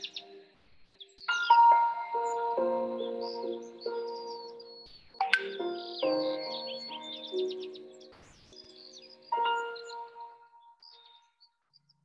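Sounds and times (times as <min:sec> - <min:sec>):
soft meditation music: 0:00.0 - 0:11.5
bird chirps: 0:00.0 - 0:12.0
chime note ringing: 0:05.2 - 0:08.1.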